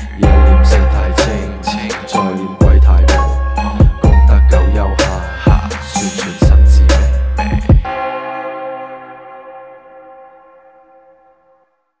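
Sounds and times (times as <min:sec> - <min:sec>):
bell-like tone ringing: 0:07.9 - 0:11.7.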